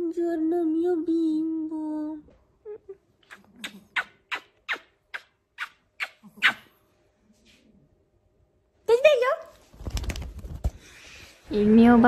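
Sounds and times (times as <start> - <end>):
small dog yipping: 3.3 - 6.7
dog whining: 5.6 - 6.8.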